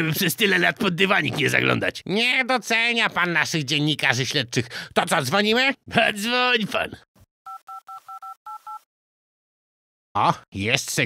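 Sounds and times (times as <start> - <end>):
touch-tone keypad beeps: 7.5 - 8.8.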